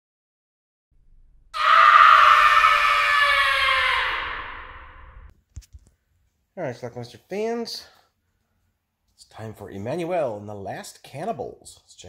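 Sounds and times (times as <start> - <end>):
long scream sliding down: 1.6 - 5.3.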